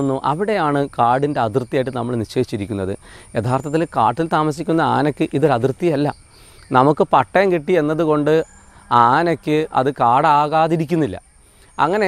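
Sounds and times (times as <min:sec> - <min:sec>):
man speaking: 0:00.0 - 0:11.2, 0:11.8 - 0:12.0
high-pitched insect drone: 0:00.0 - 0:12.0.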